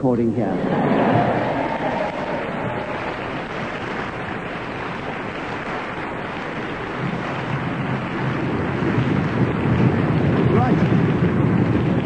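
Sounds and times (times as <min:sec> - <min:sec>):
audience applauding: 0:00.5 - 0:12.0.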